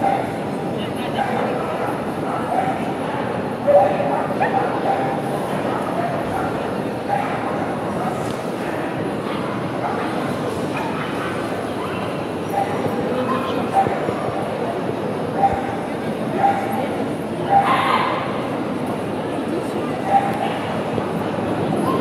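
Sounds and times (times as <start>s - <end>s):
crowd chatter in large hall: 0.0s - 22.0s.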